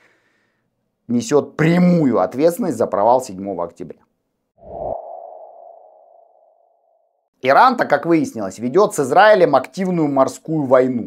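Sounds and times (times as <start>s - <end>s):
sonar-like ping: 4.8s - 7.2s.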